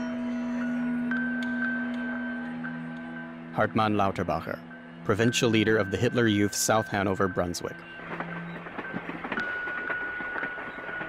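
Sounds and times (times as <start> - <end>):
steady high tone: 0.0 - 11.0
wheels clicking on rails: 5.1 - 11.0
train rattling on tracks: 5.6 - 11.0.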